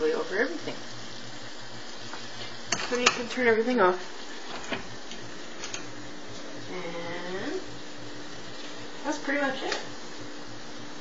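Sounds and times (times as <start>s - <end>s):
food sizzling in a pan: 0.0s - 11.0s.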